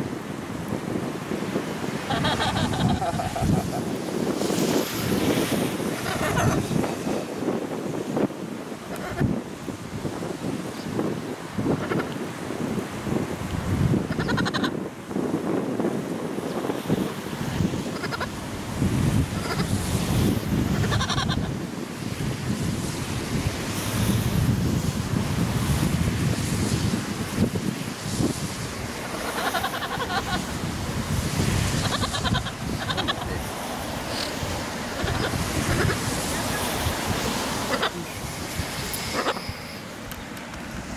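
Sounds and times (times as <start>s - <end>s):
wind buffeting microphone: 0.0s - 40.9s
short high calls: 38.9s - 39.8s.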